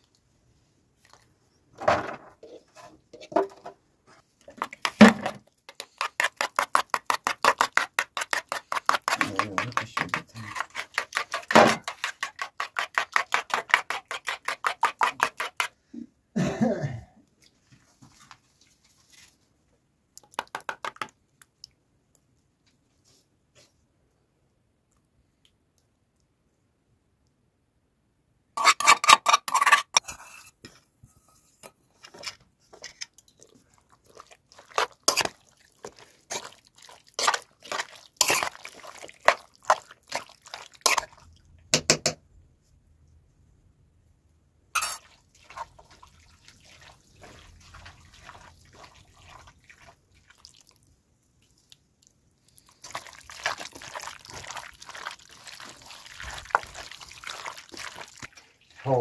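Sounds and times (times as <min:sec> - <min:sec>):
hands squelching sauce in bowl: 0:04.4 - 0:15.8, 0:32.1 - 0:41.4, 0:44.8 - 0:59.0.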